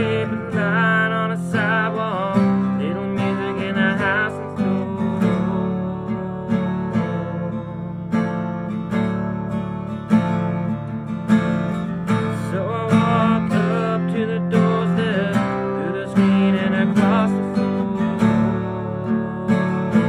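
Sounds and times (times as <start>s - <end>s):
wordless vocal line: 0.0s - 8.1s, 12.0s - 20.0s
acoustic guitar strumming: 0.0s - 20.0s.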